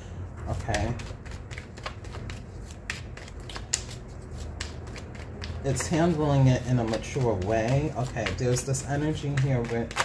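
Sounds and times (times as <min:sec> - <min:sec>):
cards being shuffled: 0:00.4 - 0:10.0.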